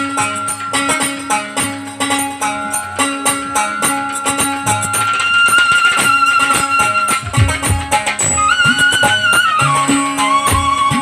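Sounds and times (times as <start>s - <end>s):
bamboo flute melody: 0.0s - 11.0s
drum strokes: 0.0s - 11.0s.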